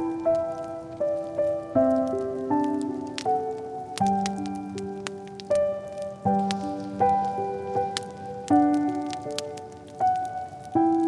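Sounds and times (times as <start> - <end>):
slow soft piano music: 0.0 - 11.0
wood fire crackling: 0.0 - 11.0.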